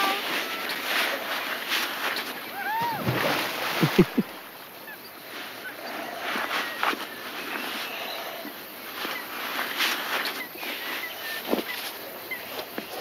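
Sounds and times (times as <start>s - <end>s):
wind: 0.0s - 13.0s
bird calling: 2.1s - 9.3s
lapping water: 2.9s - 4.5s.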